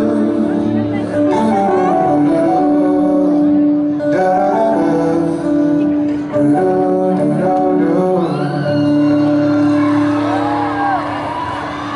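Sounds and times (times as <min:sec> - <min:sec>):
live band holding a chord: 0:00.0 - 0:11.9.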